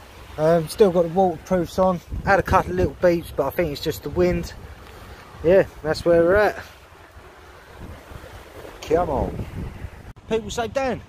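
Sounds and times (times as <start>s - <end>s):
wind on microphone: 1.5s - 10.3s.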